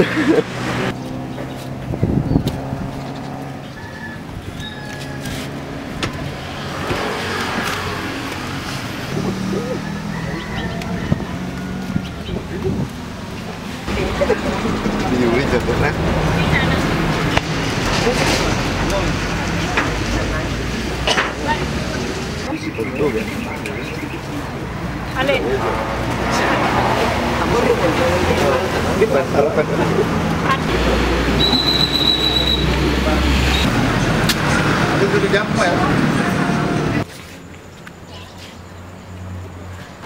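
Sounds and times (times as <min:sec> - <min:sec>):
car engine humming: 0:00.0 - 0:37.1
traffic noise: 0:00.0 - 0:40.0
people talking: 0:09.2 - 0:12.9, 0:13.9 - 0:34.0, 0:34.9 - 0:37.1.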